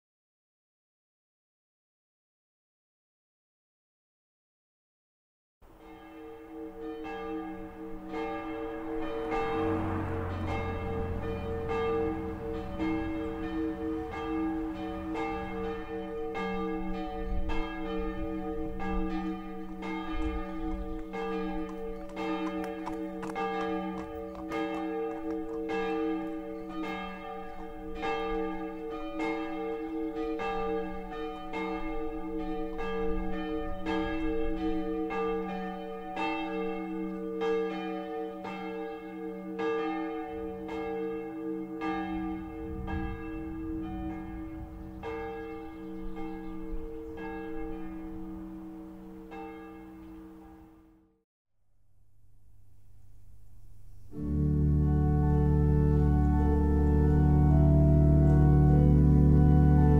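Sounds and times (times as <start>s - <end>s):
church bells ringing: 5.6s - 51.0s, 54.1s - 59.9s.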